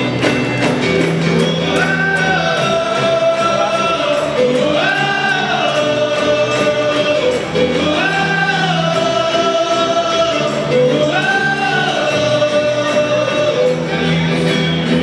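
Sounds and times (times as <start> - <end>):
acoustic guitars: 0.0 - 15.0
steady percussion beat: 0.0 - 15.0
voices singing together: 1.4 - 15.0.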